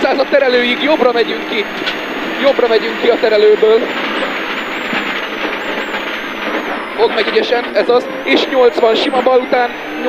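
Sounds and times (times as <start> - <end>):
faint high whine: 0.0 - 10.0
rally car engine: 0.0 - 10.0
road noise: 0.0 - 10.0.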